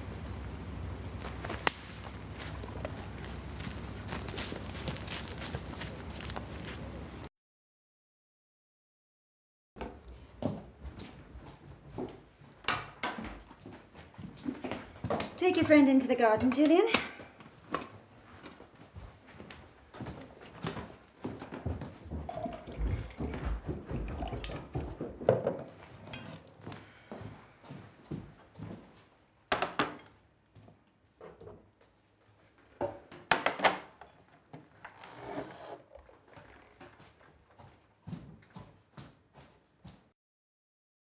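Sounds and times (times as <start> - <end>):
crockery set on wooden table: 22.2 - 26.8, 32.8 - 36.6.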